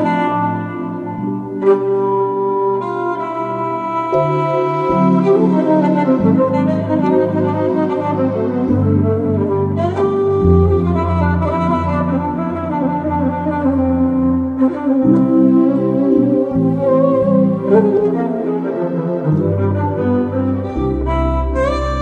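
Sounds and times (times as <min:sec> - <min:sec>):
electronic keyboard accompaniment: 0:00.0 - 0:22.0
violin melody: 0:00.0 - 0:22.0.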